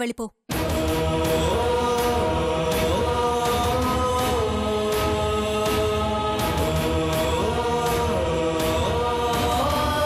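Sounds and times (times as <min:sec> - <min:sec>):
chanted choral drone: 0:00.6 - 0:10.0.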